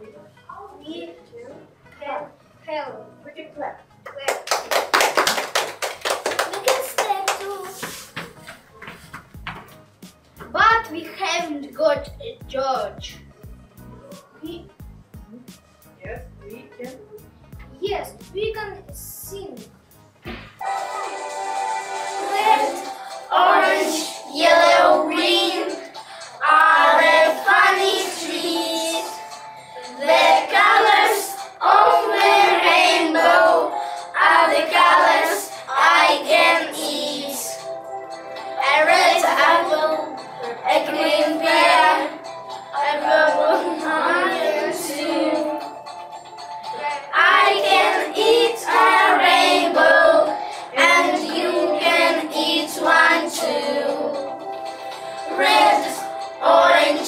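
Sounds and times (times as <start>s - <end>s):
children singing: 20.6s - 37.8s, 38.4s - 45.8s, 46.7s - 54.4s, 55.0s - 57.0s.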